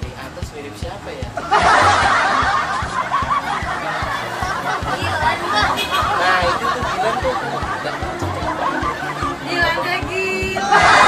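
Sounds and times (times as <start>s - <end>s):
background music with low beat: 0.0s - 11.0s
laughter: 1.4s - 9.8s, 10.6s - 11.0s.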